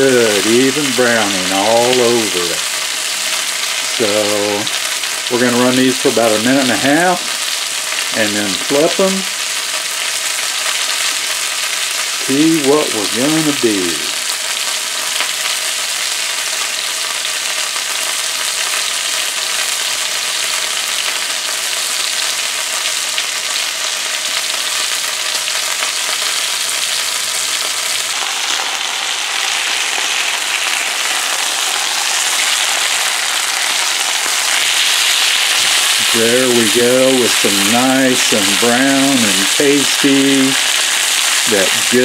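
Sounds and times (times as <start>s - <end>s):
steaks sizzling in skillet: 0.0s - 42.0s.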